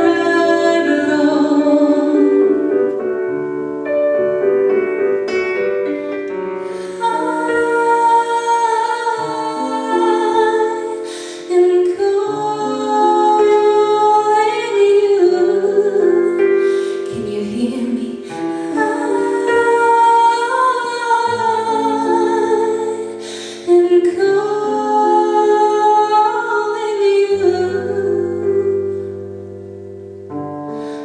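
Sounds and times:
woman singing with vibrato: 0.0s - 2.9s, 6.8s - 28.8s
electric keyboard chords: 0.0s - 31.0s.

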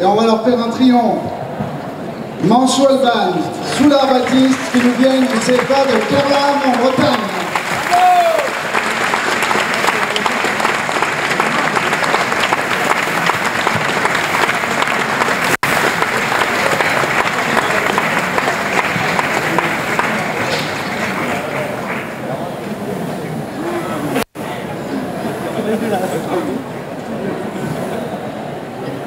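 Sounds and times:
crowd applauding: 3.4s - 22.8s.

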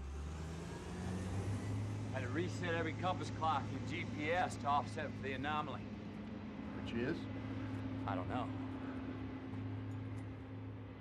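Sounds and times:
harvester engine humming: 0.0s - 11.0s.

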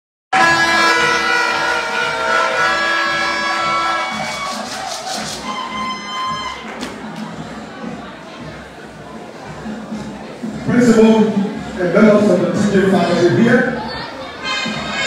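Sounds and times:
electric keyboard chords: 0.3s - 12.3s
steady low beat: 0.4s - 13.9s.

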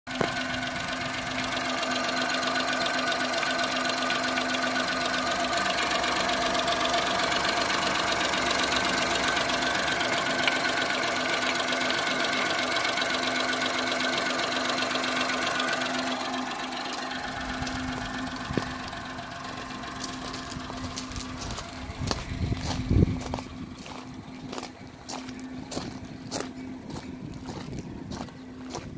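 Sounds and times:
car engine idling: 0.1s - 28.9s.

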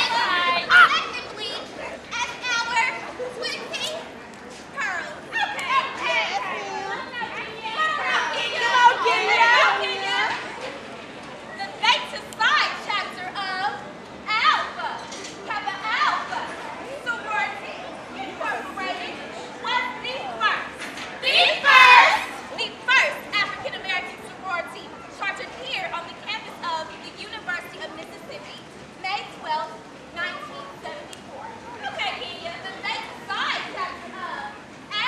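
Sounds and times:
women shouting high calls: 0.0s - 1.2s, 14.3s - 16.4s, 21.2s - 24.0s
high-pitched voices shouting: 21.2s - 22.5s.

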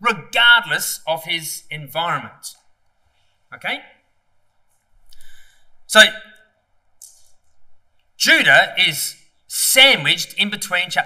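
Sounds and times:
man speaking: 0.0s - 2.6s, 3.6s - 3.9s, 5.9s - 6.2s, 8.2s - 11.0s.

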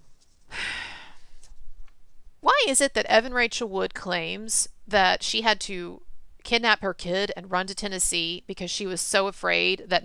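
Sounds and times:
woman sighing: 0.5s - 1.2s.

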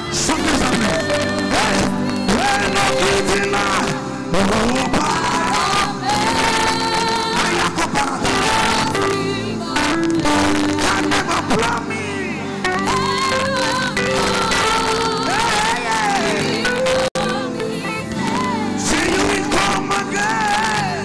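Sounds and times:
backing vocalists singing: 0.0s - 21.0s
full band playing gospel music: 0.0s - 21.0s
man singing lead vocals: 0.0s - 21.0s.

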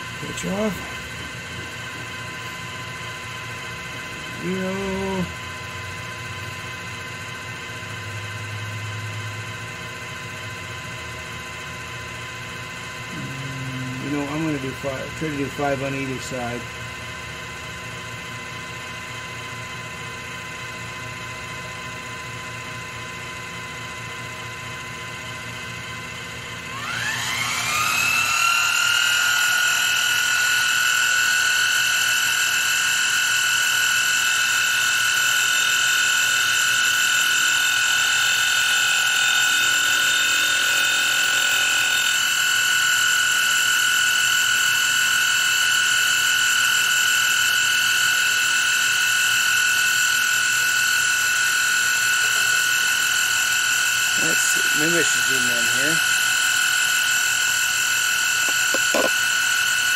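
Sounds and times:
milling machine spindle whine: 0.0s - 59.9s.

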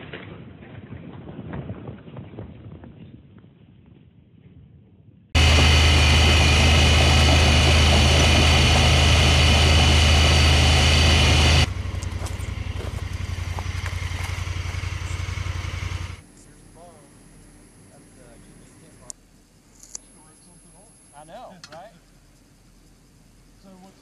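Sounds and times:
tyres on gravel road: 5.4s - 16.3s
vehicle engine running: 5.4s - 17.5s.

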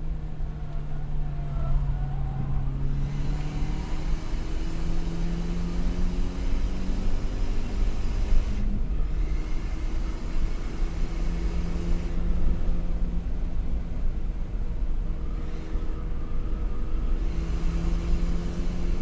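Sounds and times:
car engine accelerating: 0.0s - 19.0s
road and tyre rumble: 0.0s - 19.0s.

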